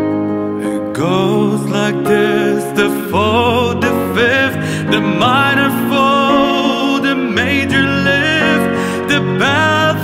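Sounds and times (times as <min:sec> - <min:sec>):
piano and strings accompaniment: 0:00.0 - 0:10.0
man singing a slow ballad: 0:00.6 - 0:10.0.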